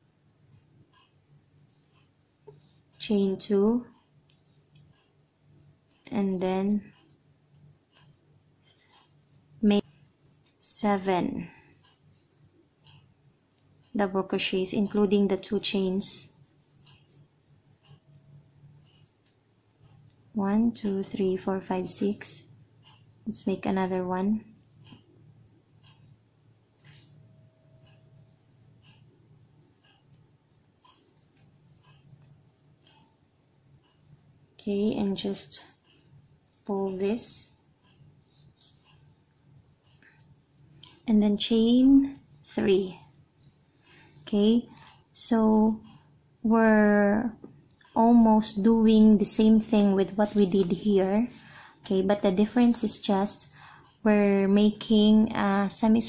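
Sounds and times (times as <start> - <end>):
faint high-pitched whine: 0.0 - 56.0
crochet hook ticks: 20.8 - 25.1, 25.8 - 26.1, 26.8 - 29.0, 29.6 - 32.2.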